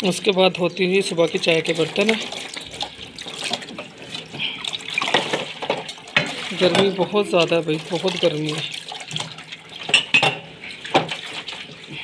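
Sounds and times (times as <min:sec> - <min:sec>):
tap water splashing on dishes: 0:00.0 - 0:12.0
dishes clinking: 0:05.0 - 0:07.0, 0:09.8 - 0:11.2.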